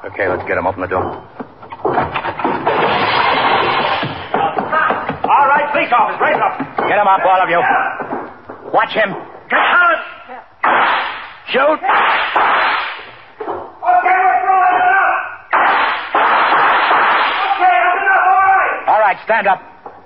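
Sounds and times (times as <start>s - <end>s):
men shouting: 4.4s - 8.1s, 13.8s - 15.5s, 17.4s - 18.9s
gunshots: 9.5s - 13.3s, 15.5s - 17.6s.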